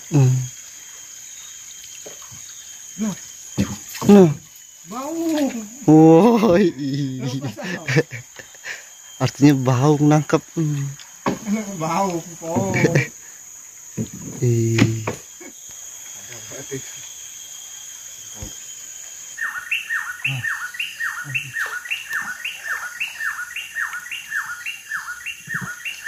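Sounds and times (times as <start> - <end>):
high insect drone: 0.0 - 26.0
bird whistling descending notes: 17.9 - 26.0.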